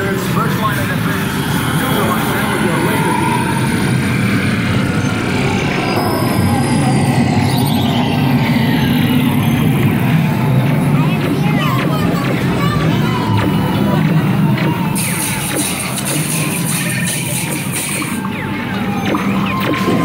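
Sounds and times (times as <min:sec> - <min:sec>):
dark ride noise: 0:00.0 - 0:20.0
people's voices: 0:00.0 - 0:20.0
high tone sliding down: 0:00.8 - 0:20.0.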